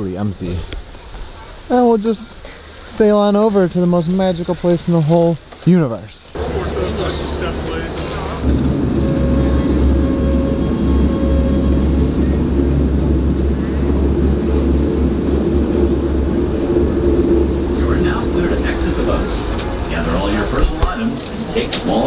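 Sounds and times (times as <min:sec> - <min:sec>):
rushing water and wind: 0:00.0 - 0:22.0
voices: 0:01.3 - 0:12.7, 0:17.6 - 0:22.0
boat engine low drone: 0:06.4 - 0:22.0.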